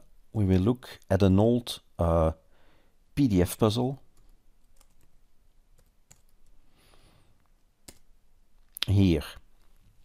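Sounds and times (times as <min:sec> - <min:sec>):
computer keyboard keystrokes: 0:04.1 - 0:05.2, 0:05.8 - 0:06.6, 0:07.8 - 0:08.1.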